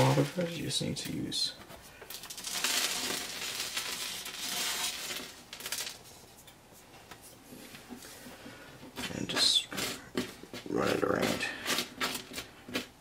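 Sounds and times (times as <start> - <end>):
rock debris rattling in plastic bag: 0.0 - 0.6, 2.1 - 6.1.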